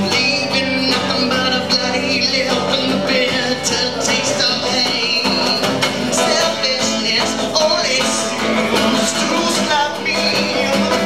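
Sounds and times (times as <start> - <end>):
acoustic guitar playing: 0.0 - 11.0.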